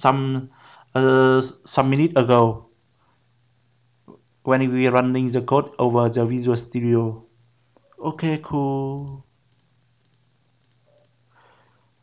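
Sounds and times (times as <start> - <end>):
faint mouse clicks: 8.9 - 11.2.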